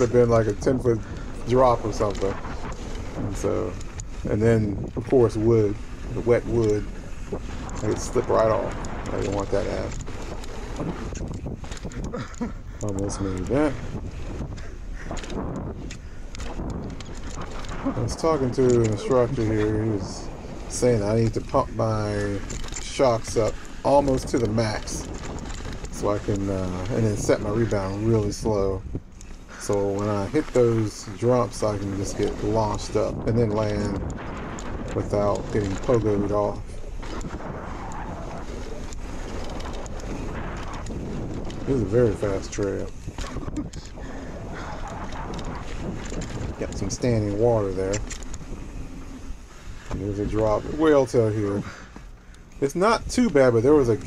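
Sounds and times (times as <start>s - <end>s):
low rumble: 0.0s - 52.7s
bike clattering over bumps: 0.0s - 54.0s
tyres crunching over dirt: 0.0s - 54.0s
wind rushing over microphone: 0.0s - 54.0s.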